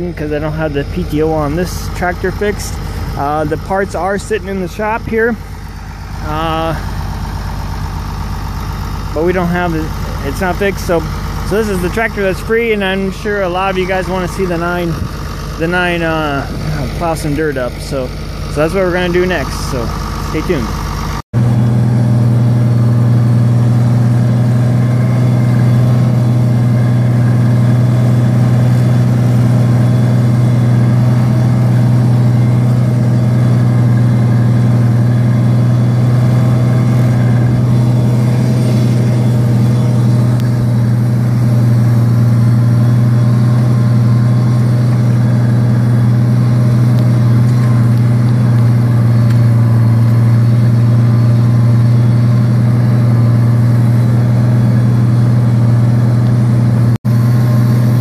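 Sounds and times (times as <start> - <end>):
tractor engine droning: 0.0 - 58.0.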